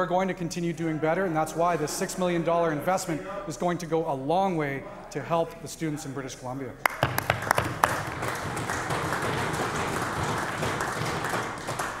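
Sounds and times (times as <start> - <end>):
crowd applause: 6.9 - 12.0.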